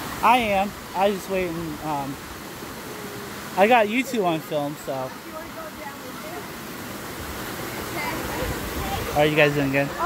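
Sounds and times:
water rushing over rock: 0.0s - 10.0s.

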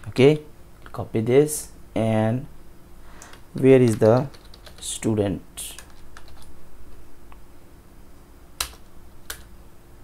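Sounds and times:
computer keyboard keystrokes: 3.2s - 4.9s, 5.7s - 6.5s, 8.6s - 9.5s.

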